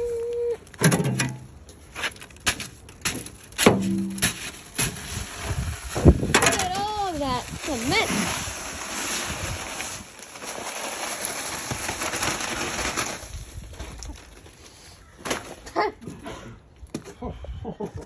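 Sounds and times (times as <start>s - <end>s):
person humming: 0.0s - 0.6s
dry concrete mix pouring: 2.6s - 14.2s.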